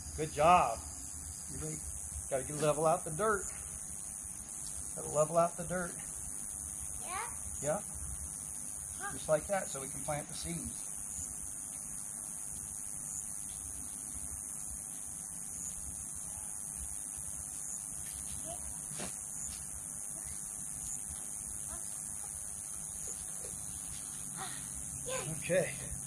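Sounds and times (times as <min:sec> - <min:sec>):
high-pitched hiss: 0:00.0 - 0:26.0.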